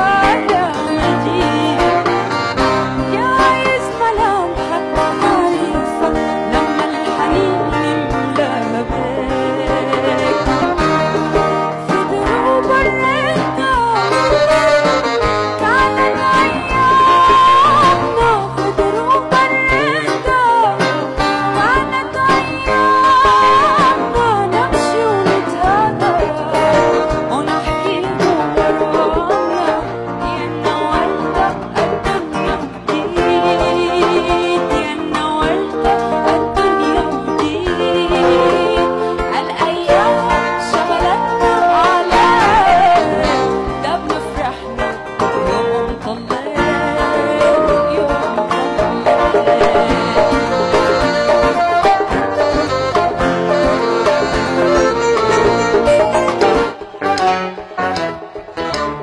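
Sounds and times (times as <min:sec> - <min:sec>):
held horn or keyboard notes: 0:00.0 - 0:46.0, 0:46.8 - 0:59.0
drum kit and conga beat: 0:00.0 - 0:59.0
guitars: 0:00.0 - 0:59.0
live band playing: 0:00.0 - 0:59.0
woman singing: 0:00.0 - 0:59.0.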